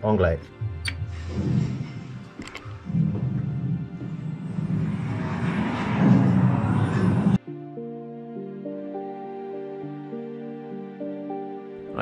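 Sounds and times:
deep loud rumbling: 1.0 - 7.4.

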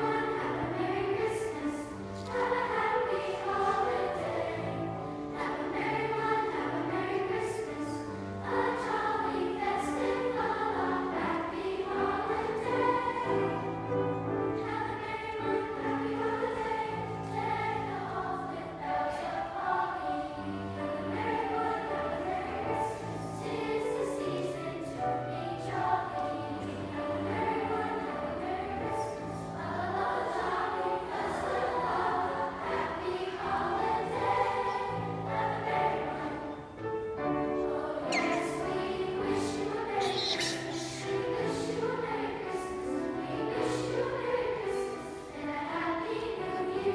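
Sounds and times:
children's choir singing: 0.0 - 46.9.

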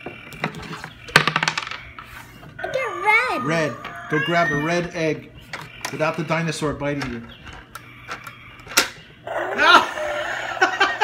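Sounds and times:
voice-like cry: 2.6 - 4.9, 9.3 - 10.7.

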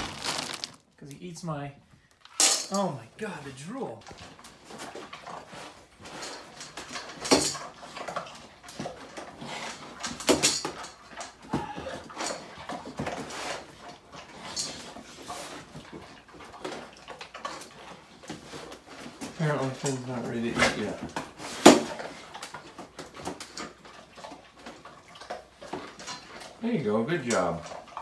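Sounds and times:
dogs eating kibble from metal bowls: 2.4 - 28.0.

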